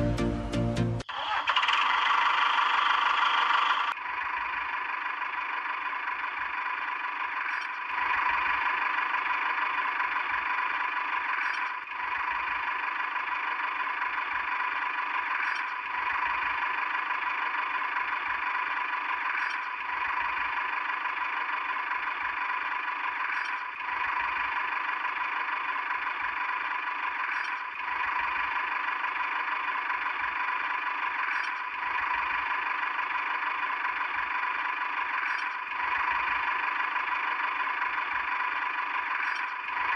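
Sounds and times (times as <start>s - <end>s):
engine-like running sound: 0.0s - 39.9s.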